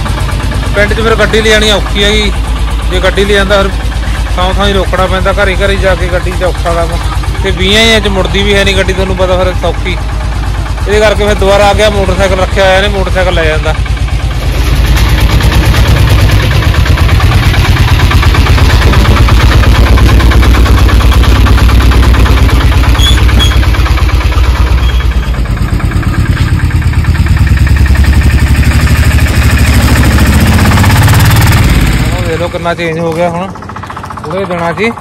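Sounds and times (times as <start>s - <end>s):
small truck engine chugging: 0.0s - 35.0s.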